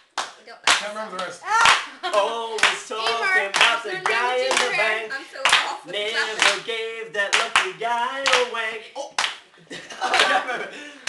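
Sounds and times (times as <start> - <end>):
hand claps: 0.0 - 4.8, 6.4 - 6.7, 7.3 - 8.5, 9.2 - 9.5
voices singing: 1.4 - 9.2.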